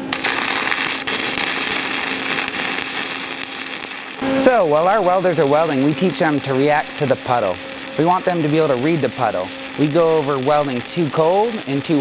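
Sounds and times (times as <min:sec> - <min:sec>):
welding arc crackle: 0:00.0 - 0:12.0.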